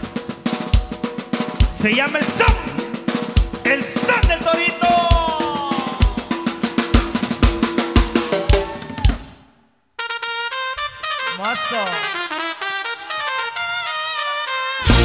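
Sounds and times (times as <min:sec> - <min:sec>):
drum kit beat: 0:00.0 - 0:09.3, 0:10.0 - 0:15.0
live band with horns: 0:00.0 - 0:09.4, 0:10.0 - 0:15.0
horn melody: 0:10.0 - 0:15.0.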